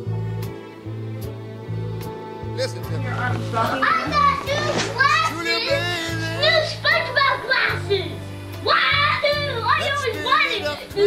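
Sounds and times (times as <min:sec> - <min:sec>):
music playing: 0:00.0 - 0:11.0
children calling out and squealing: 0:03.7 - 0:11.0.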